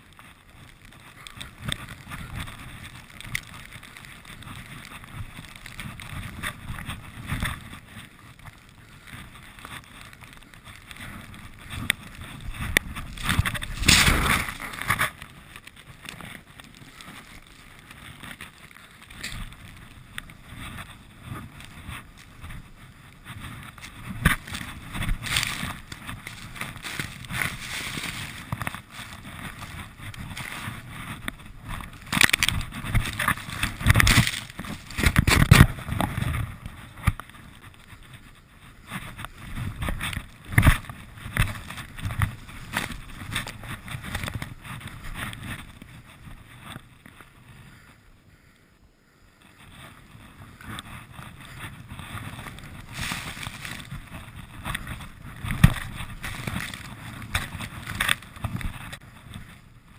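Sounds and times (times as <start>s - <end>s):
wind buffeting microphone: 8.8s - 18.3s, 19.1s - 47.9s, 49.6s - 59.9s
skis hissing through snow: 11.1s - 15.4s, 16.2s - 31.6s, 50.4s - 58.0s.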